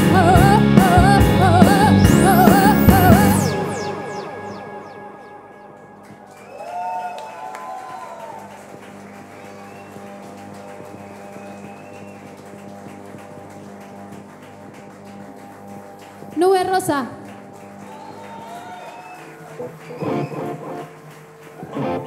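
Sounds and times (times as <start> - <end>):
synthesizer notes: 0.0 - 6.5
ringing guitar notes: 0.3 - 6.7, 21.7 - 22.0.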